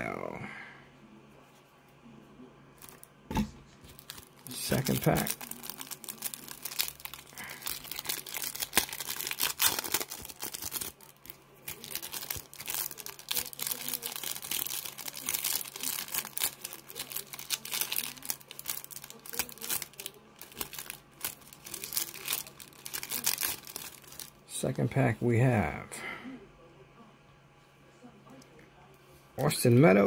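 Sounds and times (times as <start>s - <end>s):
plastic wrapper crinkling and tearing: 3.8s - 24.4s.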